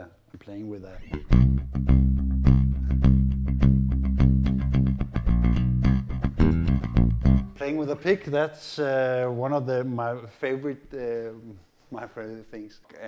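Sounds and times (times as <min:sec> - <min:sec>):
picked electric bass notes: 0:01.0 - 0:07.6.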